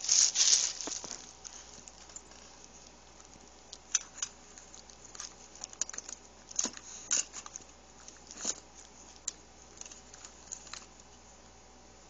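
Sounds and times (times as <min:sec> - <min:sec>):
small objects rustling in a bag: 0:00.0 - 0:02.6.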